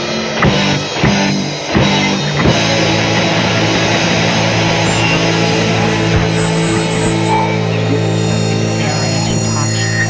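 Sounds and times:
rock band playing: 0:00.0 - 0:10.0.

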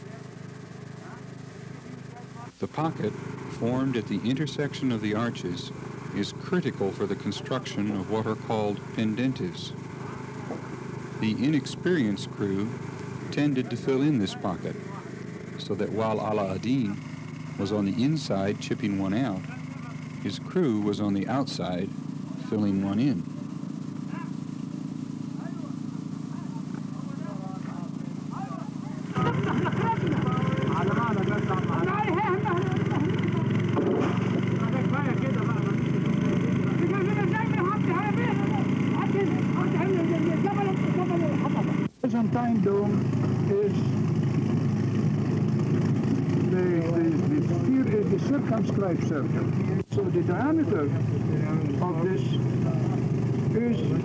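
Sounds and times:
steady hum: 0:00.0 - 0:54.0
people talking: 0:01.9 - 0:17.0, 0:17.6 - 0:23.3, 0:24.1 - 0:24.4, 0:25.4 - 0:44.0, 0:46.3 - 0:54.0.

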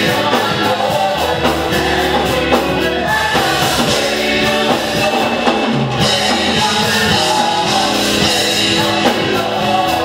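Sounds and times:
gospel group singing in harmony: 0:00.0 - 0:10.0
instrumental backing: 0:00.0 - 0:10.0
man singing lead: 0:00.0 - 0:10.0.

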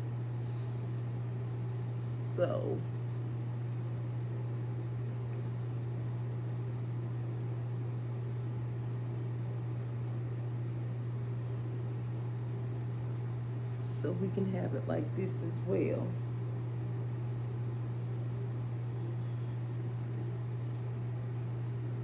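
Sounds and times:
fan humming and blowing air: 0:00.0 - 0:22.0.

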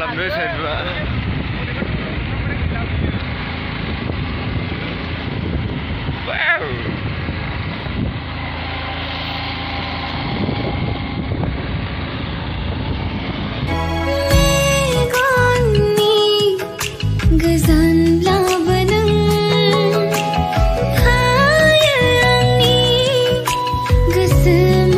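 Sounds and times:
motorcycle engine and wind rumble: 0:00.0 - 0:24.9
music: 0:13.7 - 0:24.9.

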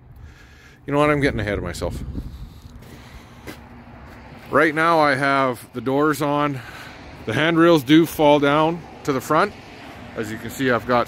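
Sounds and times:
wind rumbling on microphone: 0:00.0 - 0:03.2.

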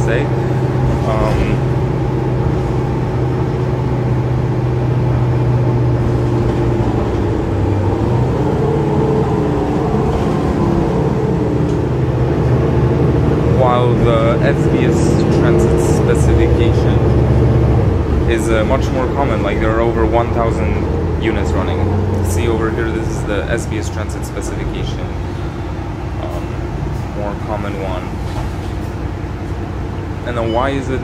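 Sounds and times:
bus diesel engine running: 0:00.0 - 0:31.0.

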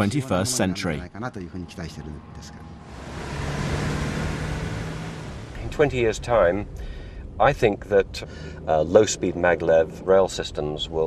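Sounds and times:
car driving past: 0:02.1 - 0:07.4.

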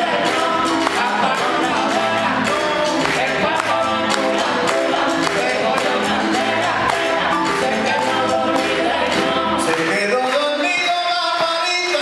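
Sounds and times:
band playing live: 0:00.0 - 0:12.0
several voices singing together: 0:00.0 - 0:12.0.

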